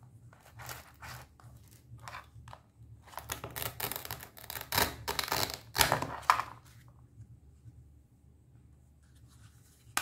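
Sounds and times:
velcro ripping apart: 3.3 - 6.0.

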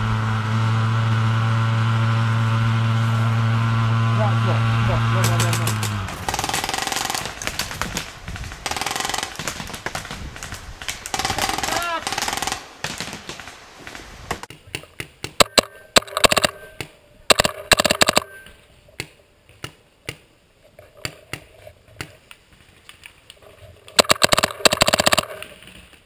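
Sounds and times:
paintball markers firing: 5.2 - 13.6, 14.4 - 18.4, 24.0 - 25.6
person shouting: 11.4 - 12.2.

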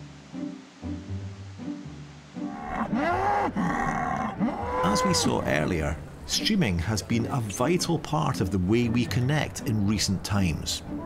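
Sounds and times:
bull bellowing: 2.5 - 5.5.

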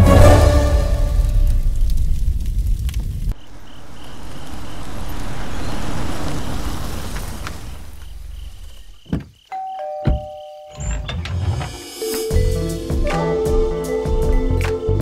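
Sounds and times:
low rushing noise: 0.4 - 9.0
two-tone doorbell chime: 9.5 - 11.1
drum-heavy music: 11.7 - 15.0.

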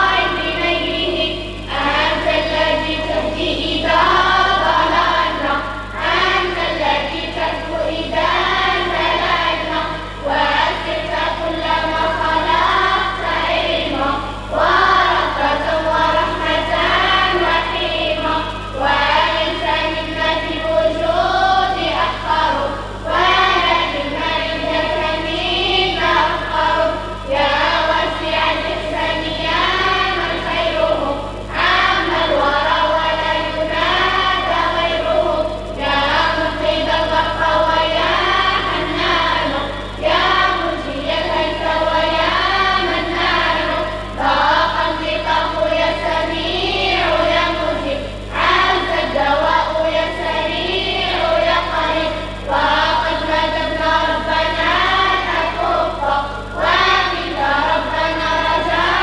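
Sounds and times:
children singing over loudspeaker: 0.0 - 59.0
low electrical hum: 0.0 - 59.0.

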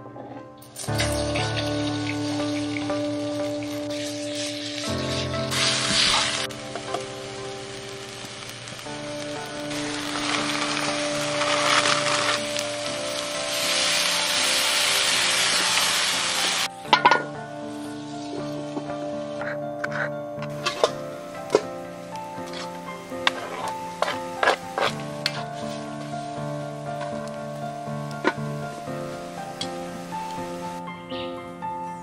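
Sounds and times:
music with held notes: 0.0 - 32.0
food sizzling in a wok: 0.8 - 19.6, 20.5 - 30.8.

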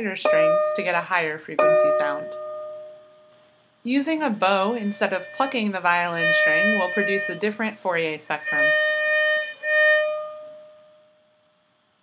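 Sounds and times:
bowed violin note: 4.2 - 10.9.

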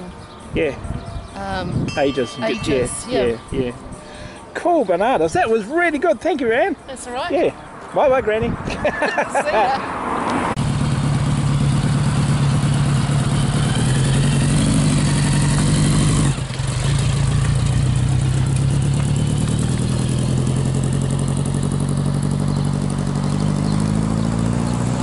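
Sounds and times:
motorcycle engine running: 10.6 - 25.0.

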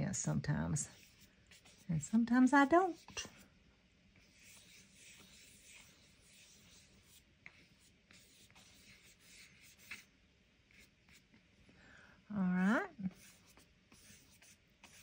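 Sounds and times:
paintbrush swishing on paper: 0.8 - 3.5, 4.2 - 10.1, 13.0 - 15.0.

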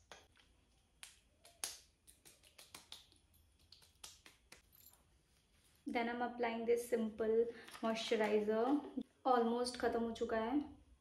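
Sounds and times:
hands patting skin: 0.0 - 4.8.

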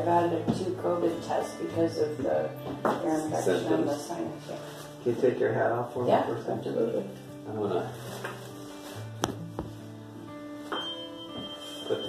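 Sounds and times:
tuning fork ringing: 10.6 - 12.0.

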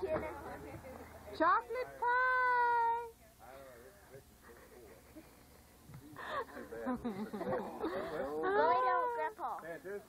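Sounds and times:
faint talk: 0.0 - 9.6.

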